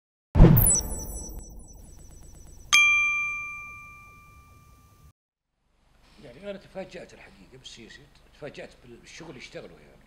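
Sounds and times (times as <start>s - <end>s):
bright bell-like ding: 0.6s - 5.1s.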